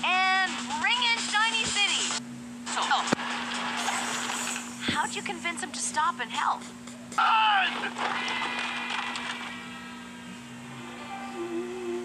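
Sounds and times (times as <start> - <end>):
steady low hum: 0.0 - 12.0
sustained background music tones: 6.2 - 12.0.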